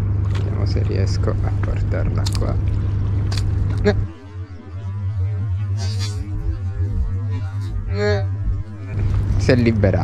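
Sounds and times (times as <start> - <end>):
low hum: 0.0 - 10.0
wind rumbling on microphone: 5.2 - 10.0.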